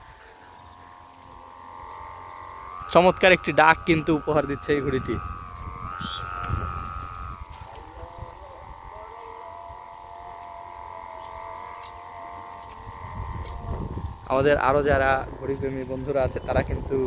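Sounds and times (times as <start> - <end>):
kite hummer droning: 0.0 - 17.0
wind rumble on microphone: 0.0 - 17.0.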